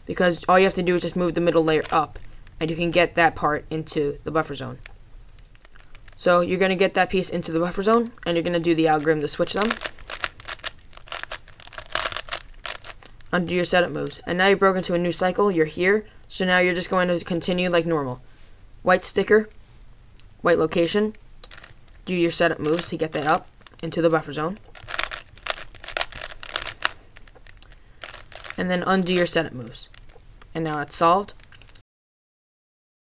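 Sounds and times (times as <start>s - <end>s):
puzzle cube clicking: 1.6s - 2.1s, 8.0s - 13.2s, 21.4s - 21.8s, 22.4s - 30.2s.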